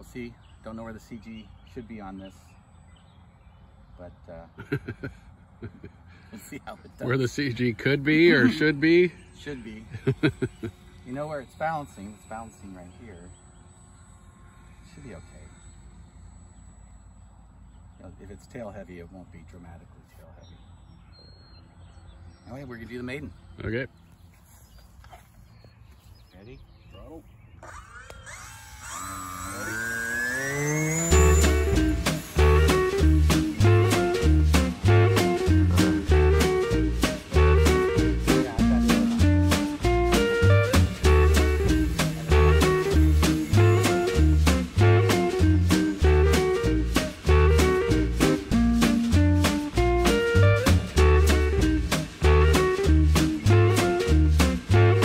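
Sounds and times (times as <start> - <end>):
electric motor whine: 6.1 - 20.0, 27.5 - 55.0
upbeat swing music: 31.1 - 55.0.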